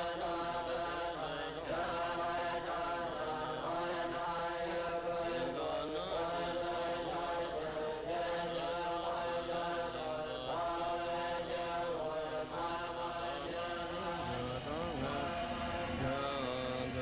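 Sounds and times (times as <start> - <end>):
chanting voices: 0.0 - 17.0
low steady drone: 0.0 - 17.0.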